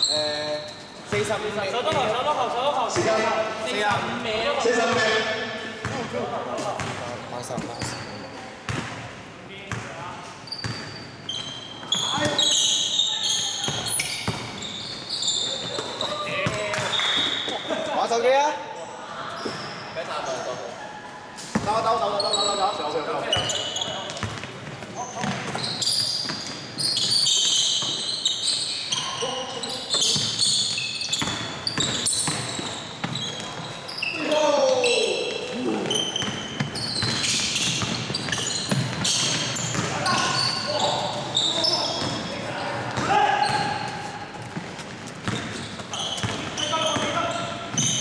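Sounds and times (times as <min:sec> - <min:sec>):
sneakers squeaking: 0:00.0 - 0:48.0
players calling out: 0:24.9 - 0:44.7.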